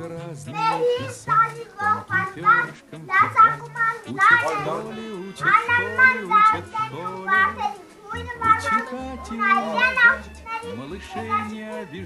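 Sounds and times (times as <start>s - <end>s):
background music with bass line: 0.0s - 12.0s
children's voices: 0.0s - 12.0s.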